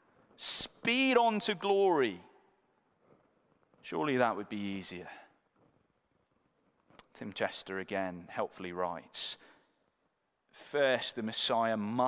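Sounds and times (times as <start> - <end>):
man's voice: 0.4 - 2.4, 3.8 - 5.3, 10.6 - 12.0.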